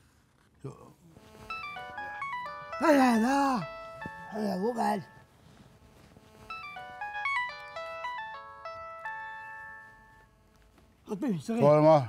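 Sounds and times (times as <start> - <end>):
mobile phone ringtone: 1.4 - 10.4.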